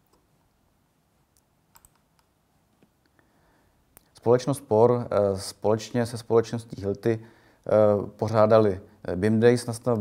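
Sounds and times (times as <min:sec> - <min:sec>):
computer mouse clicks: 0:01.4 - 0:02.9.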